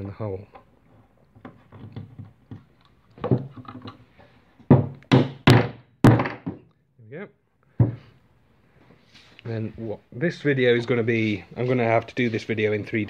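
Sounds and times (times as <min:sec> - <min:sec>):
sharp knocks of wooden dowel: 0:04.7 - 0:06.7.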